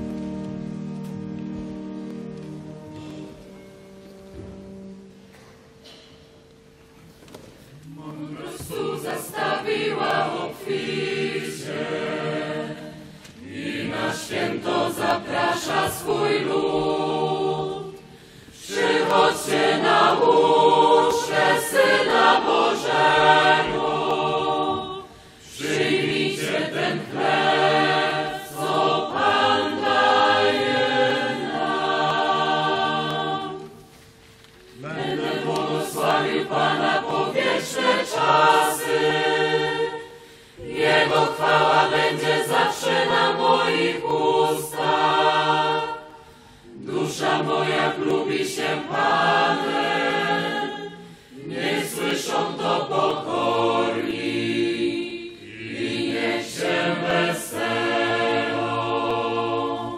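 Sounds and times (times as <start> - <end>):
choir singing a hymn: 7.8 - 34.1, 34.7 - 59.9
singers breathing: 18.0 - 18.6, 25.0 - 25.5, 40.0 - 40.6, 46.1 - 46.8, 50.9 - 51.4.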